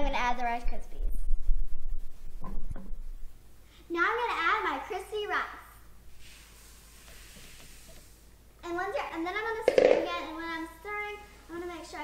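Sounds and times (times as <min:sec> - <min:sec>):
child talking: 0:00.0 - 0:01.2, 0:03.9 - 0:05.7, 0:08.6 - 0:12.0
sharp knock: 0:09.7 - 0:10.2.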